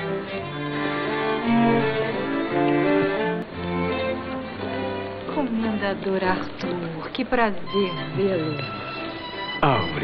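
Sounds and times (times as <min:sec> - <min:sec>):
string ensemble music: 0:00.0 - 0:10.0.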